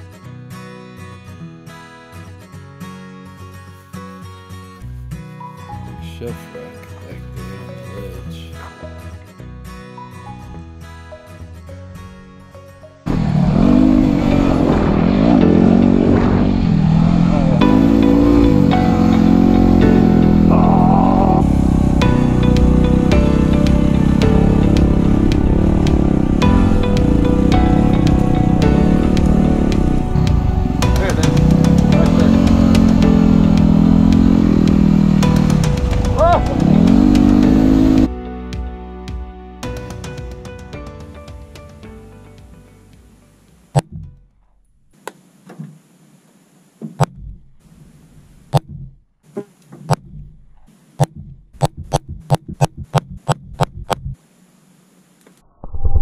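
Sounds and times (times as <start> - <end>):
background music: 0.0 - 44.2
motorcycle engine revving: 13.1 - 38.1.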